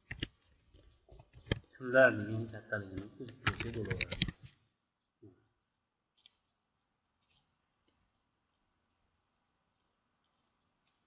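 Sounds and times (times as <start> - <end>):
faint computer clicks: 3.0 - 4.6.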